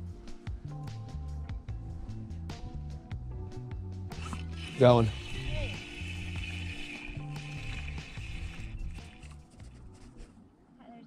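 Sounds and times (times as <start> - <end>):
background music with bass line: 0.0 - 10.3.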